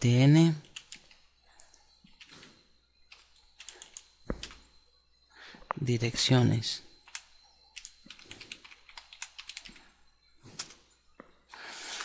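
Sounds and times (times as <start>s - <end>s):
computer keyboard typing: 0.6s - 1.2s, 3.1s - 4.6s, 7.0s - 9.8s, 10.5s - 10.8s.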